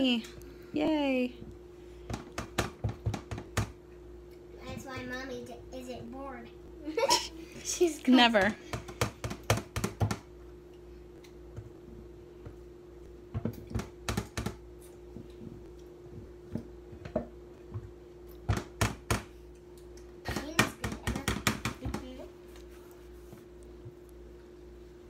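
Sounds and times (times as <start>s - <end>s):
faint steady hum: 0.0s - 25.0s.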